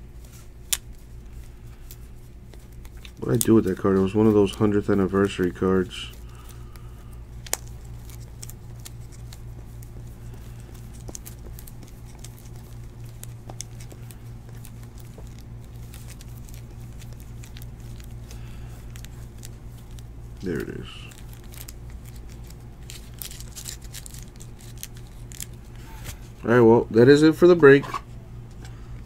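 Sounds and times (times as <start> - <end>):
steady low hum: 0.0 - 29.0
baseball cards flicking: 0.2 - 26.3.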